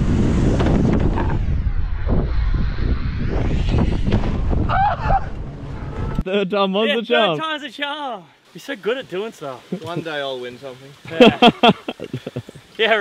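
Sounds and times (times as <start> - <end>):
wind buffeting microphone: 0.0 - 6.2.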